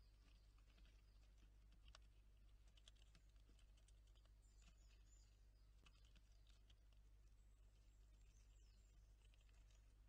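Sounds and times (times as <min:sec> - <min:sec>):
low steady hum: 0:00.0 - 0:10.0
squirrels cracking seeds: 0:00.0 - 0:10.0.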